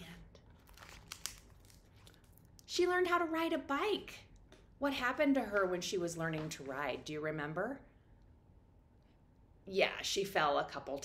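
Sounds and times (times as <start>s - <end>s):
book pages crinkling: 0.5s - 2.6s.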